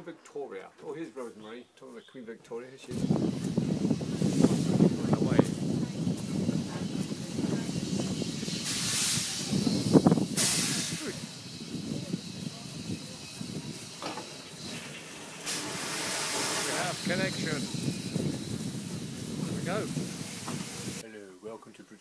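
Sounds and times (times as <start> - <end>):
steam locomotive hissing steam: 2.9 - 21.0.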